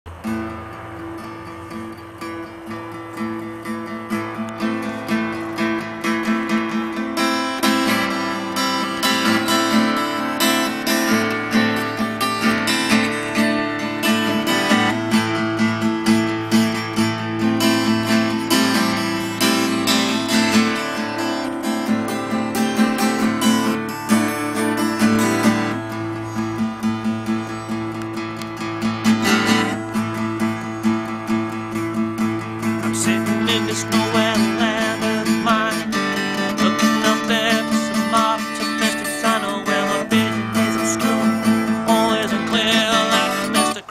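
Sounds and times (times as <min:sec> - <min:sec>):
acoustic guitar strumming: 0:00.1 - 0:43.9.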